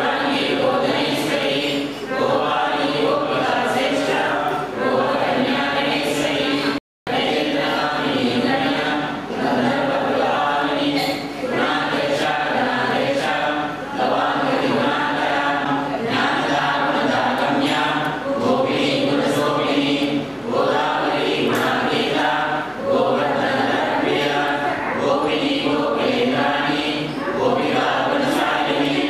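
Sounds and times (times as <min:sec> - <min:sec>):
group of voices chanting: 0:00.0 - 0:29.0.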